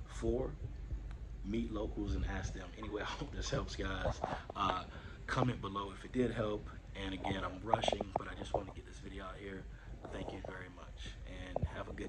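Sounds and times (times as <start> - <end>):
man speaking softly: 1.4 - 12.0.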